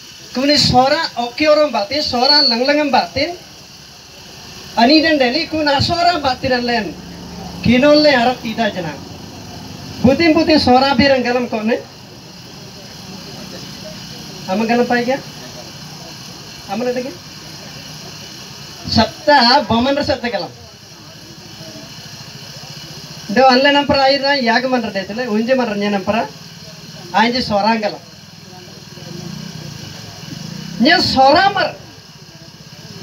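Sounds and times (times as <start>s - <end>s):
engine-like drone: 0.0s - 33.0s.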